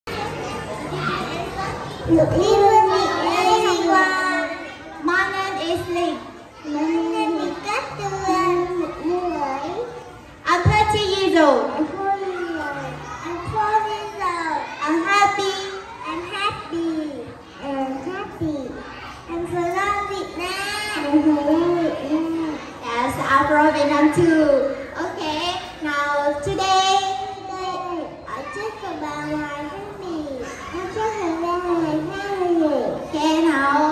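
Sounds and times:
children chattering: 0.0s - 33.9s
faint music: 0.0s - 33.9s
murmur of voices: 0.0s - 33.9s.

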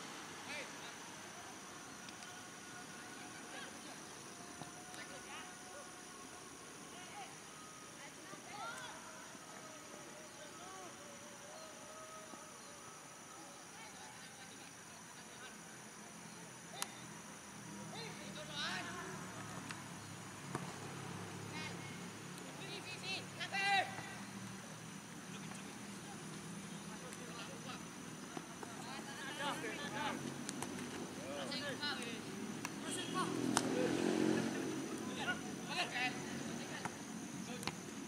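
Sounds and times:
players shouting short calls: 21.4s - 24.4s, 25.2s - 37.8s.

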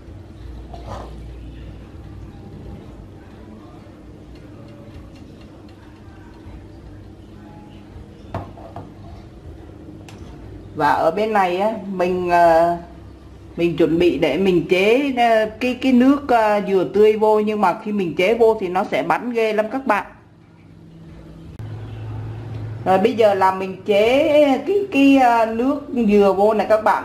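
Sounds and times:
low motor hum: 20.2s - 24.7s.

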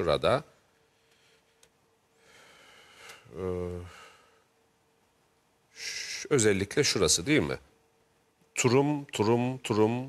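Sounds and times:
man breathing in: 2.2s - 3.3s, 3.9s - 4.5s.

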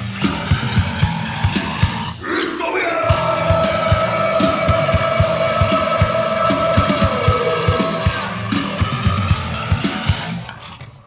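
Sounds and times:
rock band playing: 0.0s - 2.2s, 2.9s - 10.7s
drums: 0.0s - 11.0s.

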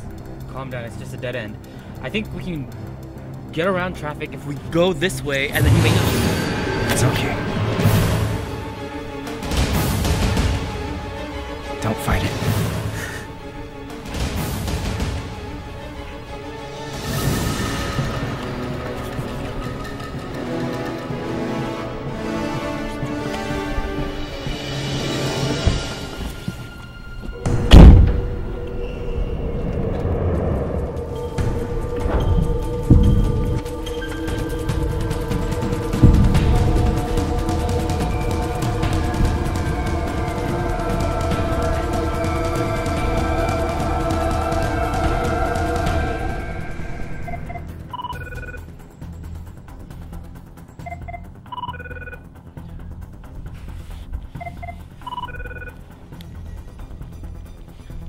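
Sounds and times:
tense drone underscore: 0.0s - 58.0s
phone ringtone beeps: 47.2s - 48.7s, 50.8s - 52.2s, 54.4s - 55.8s.

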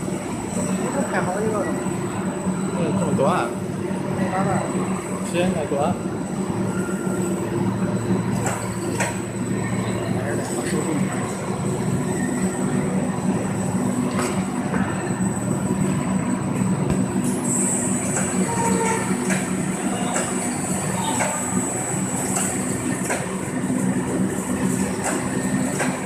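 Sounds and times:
high machine whine: 0.0s - 26.0s
low machine hum: 0.0s - 26.0s.

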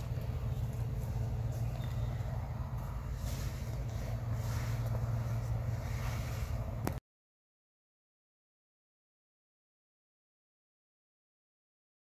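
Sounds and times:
steady low drone: 0.0s - 7.0s.

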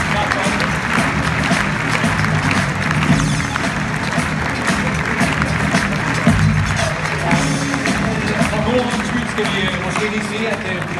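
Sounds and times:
audience applauding: 0.0s - 10.9s
music playing: 0.0s - 10.9s.

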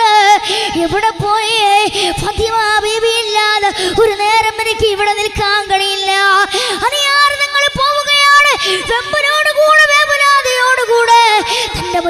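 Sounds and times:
boy singing into microphone: 0.0s - 12.0s.

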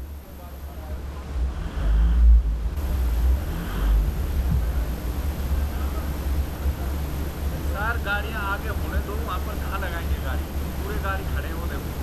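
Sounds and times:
pickup engine rumbling: 1.0s - 12.0s.

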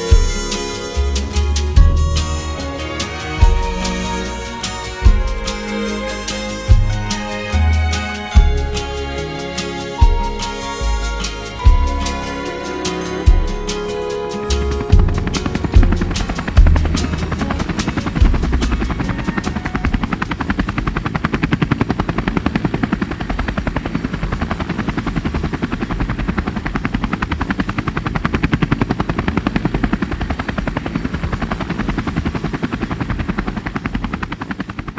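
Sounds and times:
rapid rhythmic chopping: 14.6s - 34.9s.

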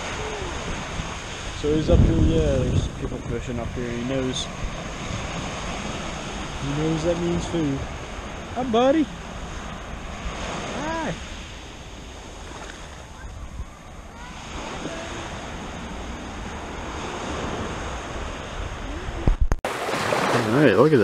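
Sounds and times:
wind on microphone: 0.0s - 20.3s
small waves washing on sand: 0.0s - 21.0s.

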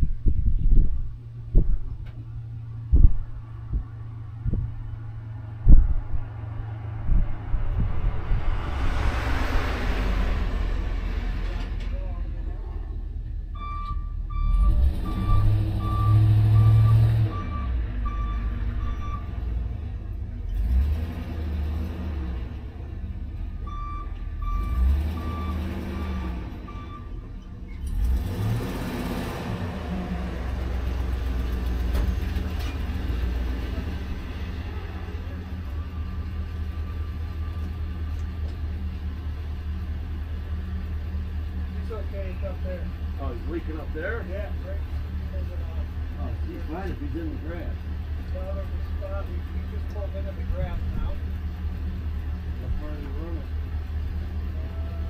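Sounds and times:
engine revving: 1.5s - 12.8s, 14.3s - 55.0s
short electronic beeps: 13.6s - 19.3s.

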